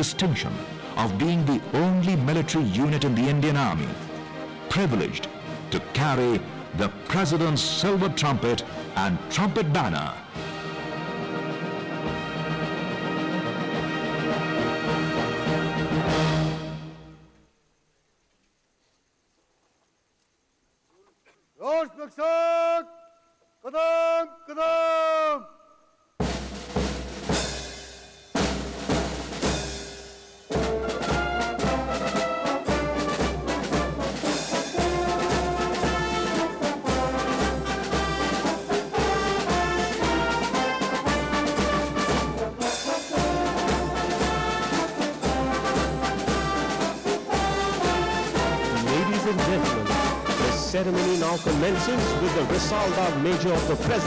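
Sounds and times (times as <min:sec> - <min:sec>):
brass and drum music: 0:00.0 - 0:17.3, 0:26.2 - 0:54.0
heavy drum beats: 0:26.2 - 0:54.0
trumpet call: 0:30.5 - 0:54.0.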